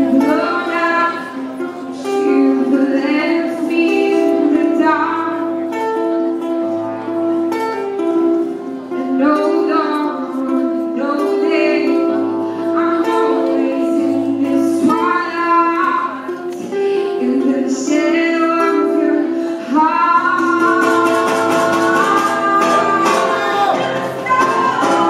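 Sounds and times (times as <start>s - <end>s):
woman singing: 0.0s - 5.5s, 8.9s - 25.0s
acoustic guitar strummed and picked: 0.0s - 25.0s.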